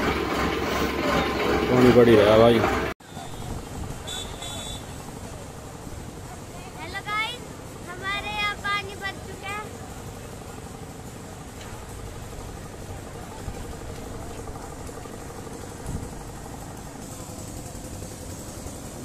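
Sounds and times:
faint traffic engine hum: 0.0s - 19.0s
outdoor street din: 0.0s - 19.0s.

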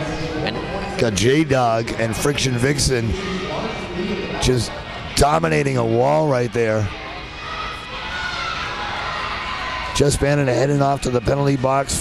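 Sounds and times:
crowd cheering and calling out: 0.0s - 12.0s.

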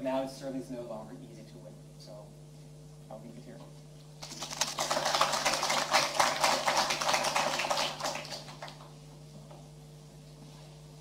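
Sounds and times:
audience applauding: 4.2s - 8.9s.

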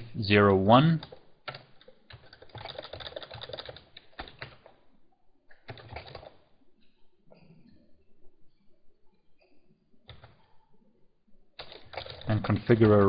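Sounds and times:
typing on computer keyboard: 1.0s - 4.8s, 5.6s - 6.4s, 10.1s - 10.5s, 11.6s - 13.0s.

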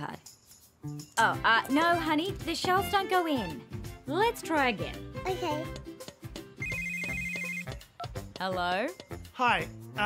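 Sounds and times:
mobile phone ringing: 6.6s - 8.1s.

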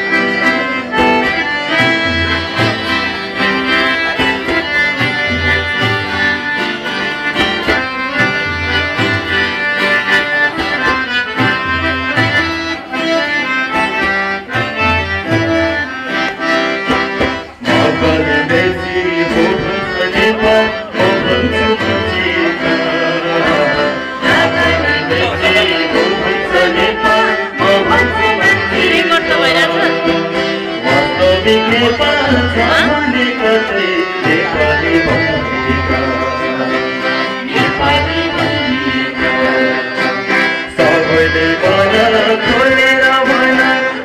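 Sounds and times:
hand drum beat: 0.0s - 43.8s
harmonium melody: 0.0s - 44.0s
person singing: 17.5s - 44.0s.

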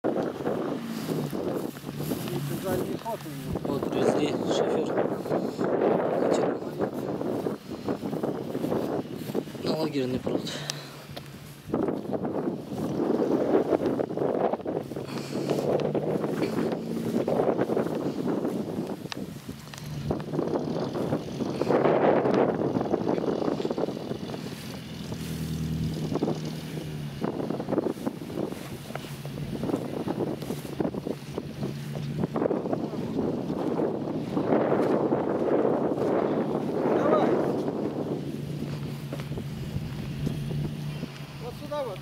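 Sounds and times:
van engine humming: 0.0s - 42.0s
wind buffeting microphone: 0.0s - 42.0s.

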